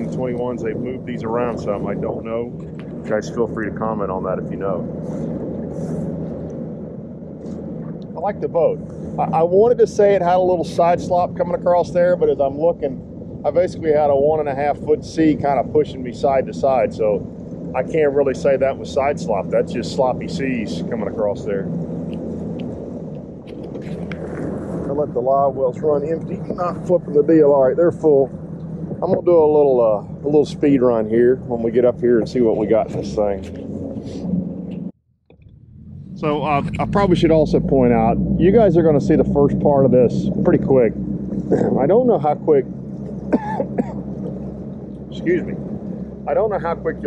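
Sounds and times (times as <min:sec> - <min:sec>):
outboard motor running: 0:00.0 - 0:47.0
water noise: 0:00.0 - 0:47.0
wind: 0:00.0 - 0:47.0
man clearing his throat: 0:43.2 - 0:44.1.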